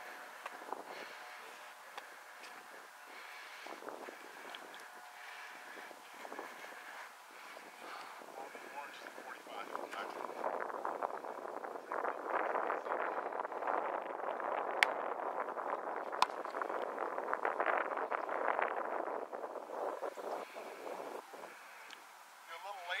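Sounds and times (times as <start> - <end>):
wind rushing over microphone: 0.0 - 23.0.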